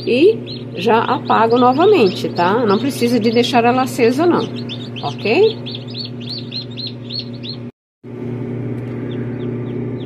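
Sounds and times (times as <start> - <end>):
chicks peeping: 0.0 - 7.7, 8.8 - 10.0
incubator humming: 0.0 - 10.0.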